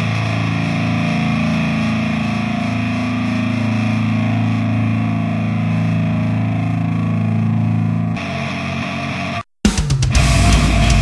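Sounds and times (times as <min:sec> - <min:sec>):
bass: 0:00.0 - 0:11.0
distorted electric guitars: 0:00.0 - 0:11.0
drums: 0:09.1 - 0:11.0.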